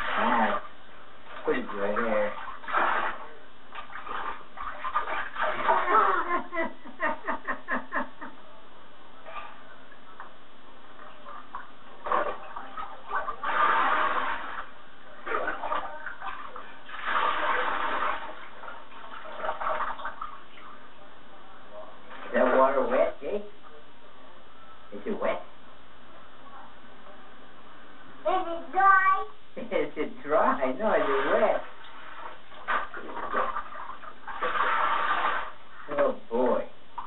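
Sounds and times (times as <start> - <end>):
bath water splashing: 0.0 - 7.6, 11.0 - 20.9, 22.0 - 23.2, 30.4 - 37.0
water poured from a cup: 15.3 - 20.4, 31.9 - 35.6.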